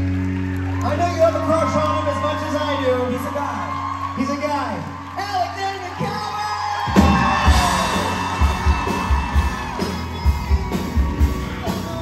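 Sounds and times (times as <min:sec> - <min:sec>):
audience yelling and whooping: 0:00.0 - 0:12.0
live rock band playing: 0:06.8 - 0:12.0.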